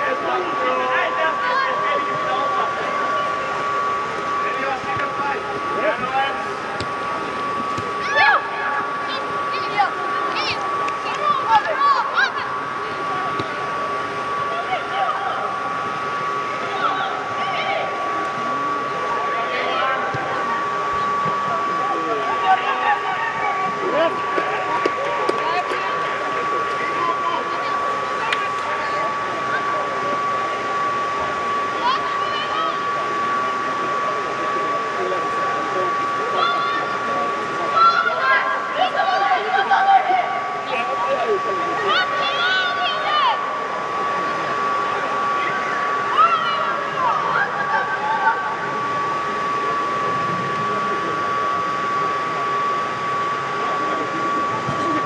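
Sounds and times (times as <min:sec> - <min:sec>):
blower fans humming: 0:00.0 - 0:55.0
young players shouting: 0:08.0 - 0:12.5, 0:37.7 - 0:40.4, 0:41.8 - 0:43.4.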